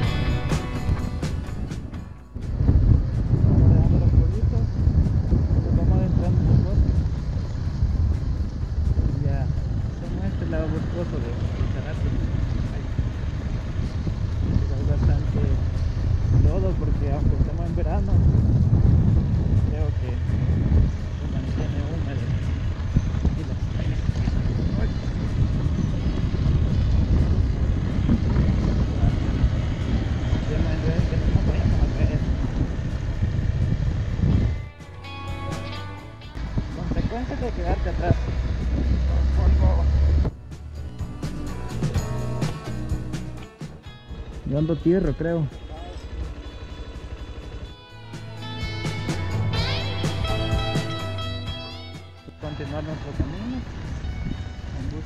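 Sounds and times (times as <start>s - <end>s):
wind on microphone: 0.0s - 34.8s, 35.4s - 44.6s, 48.8s - 55.0s
road rumble: 0.0s - 55.0s.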